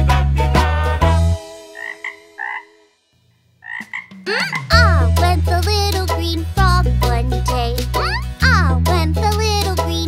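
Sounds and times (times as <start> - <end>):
children's song: 0.0 - 3.0, 4.2 - 10.0
cartoon frog croaks: 1.7 - 2.8, 3.6 - 5.1.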